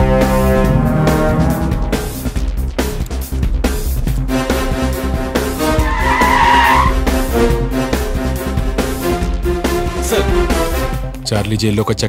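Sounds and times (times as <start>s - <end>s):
high wavering screech: 5.9s - 7.0s.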